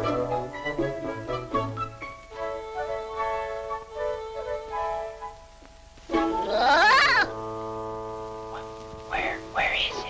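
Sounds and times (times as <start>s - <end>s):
orchestral film music: 0.0s - 10.0s.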